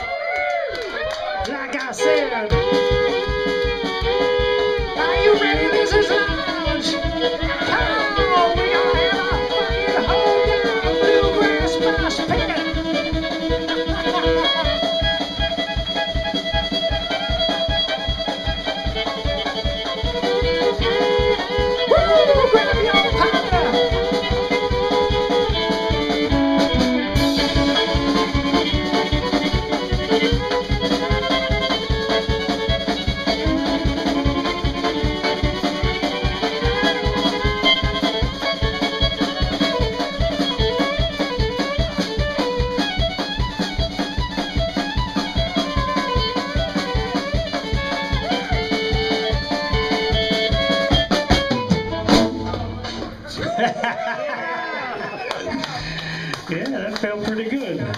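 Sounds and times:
fiddle playing melody: 0.8 - 54.2
drum kit quick beat: 1.3 - 53.7.

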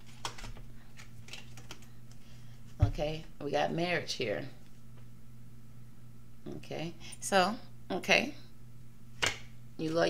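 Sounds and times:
cards being shuffled: 0.0 - 2.2
low steady hum: 0.0 - 10.0.

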